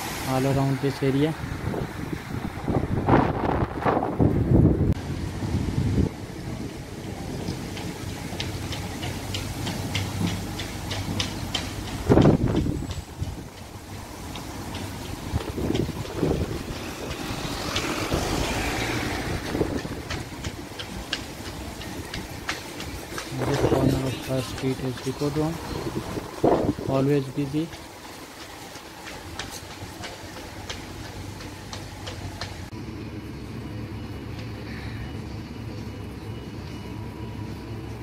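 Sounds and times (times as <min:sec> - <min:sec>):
low rushes: 0:00.0 - 0:33.6
traffic rumble: 0:00.0 - 0:38.0
wind on microphone: 0:01.4 - 0:07.6, 0:12.0 - 0:13.6, 0:15.0 - 0:22.5, 0:23.2 - 0:27.0.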